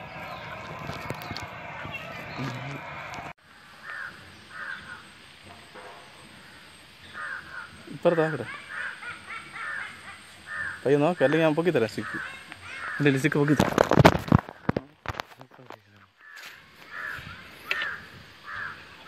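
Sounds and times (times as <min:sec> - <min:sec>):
crows cawing: 0:03.7 - 0:05.2, 0:06.2 - 0:13.6, 0:16.2 - 0:19.0.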